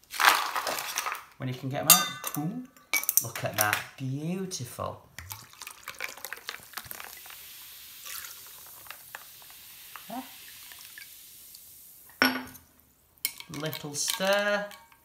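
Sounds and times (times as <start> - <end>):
tonic water pouring and fizzing: 5.1 - 12.2.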